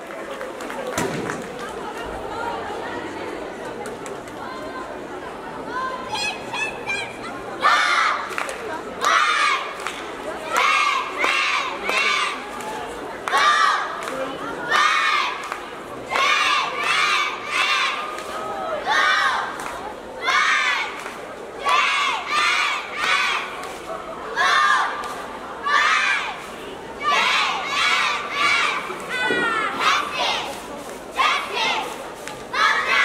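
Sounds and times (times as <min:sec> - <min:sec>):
cheerleaders shouting in unison: 0:13.3 - 0:15.5, 0:16.1 - 0:23.5, 0:24.3 - 0:25.0, 0:25.6 - 0:30.6, 0:31.2 - 0:31.9, 0:32.5 - 0:33.0.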